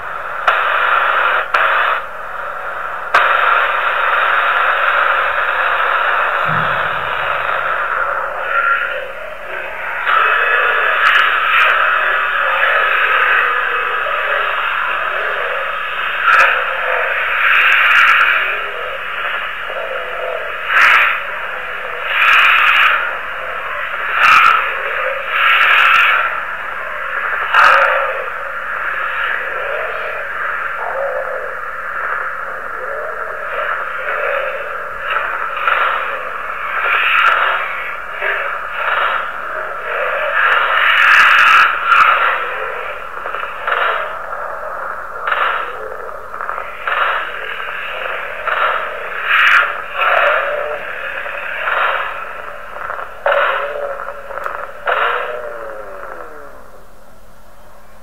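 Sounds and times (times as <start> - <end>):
radio static hiss: 0.0 - 58.0.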